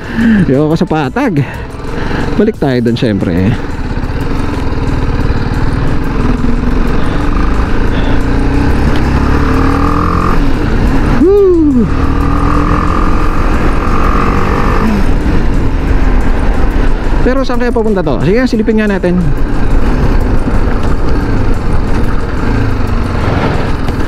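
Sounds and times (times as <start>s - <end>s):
engine revving: 0.0s - 24.0s
motorcycle engine running: 0.0s - 24.0s.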